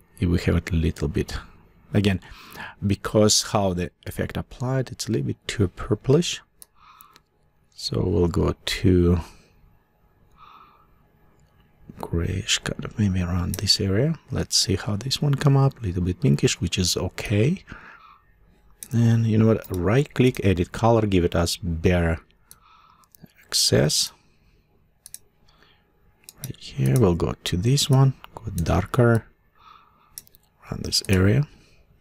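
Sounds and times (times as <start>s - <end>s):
faint computer mouse clicks: 25.0s - 25.6s.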